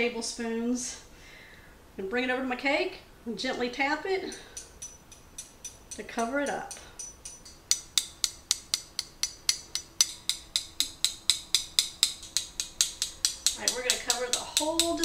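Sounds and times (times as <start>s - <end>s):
spoon tapping metal sieve: 4.3s - 15.0s.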